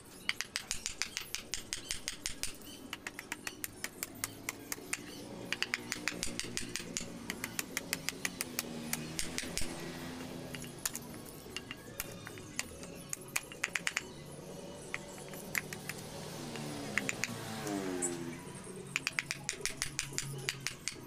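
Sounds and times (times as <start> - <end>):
blade shaving wood: 0.4 - 13.1.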